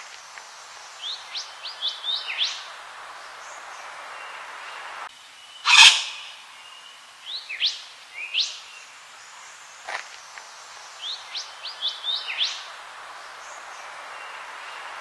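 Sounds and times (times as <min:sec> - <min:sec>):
harsh bird call: 0:05.6 - 0:06.6
bird whistling rising notes: 0:05.7 - 0:06.4.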